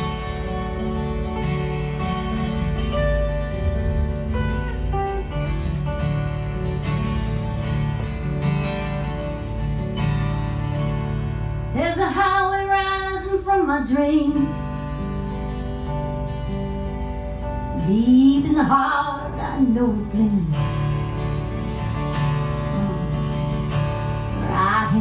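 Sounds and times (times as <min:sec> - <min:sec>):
acoustic guitars playing: 0:00.0 - 0:25.0
woman singing: 0:11.7 - 0:14.6, 0:17.7 - 0:20.9, 0:22.7 - 0:23.7, 0:24.3 - 0:25.0.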